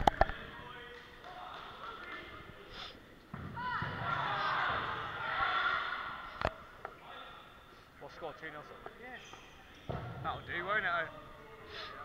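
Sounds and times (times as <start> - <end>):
voices shouting in a hall: 3.5 - 6.5.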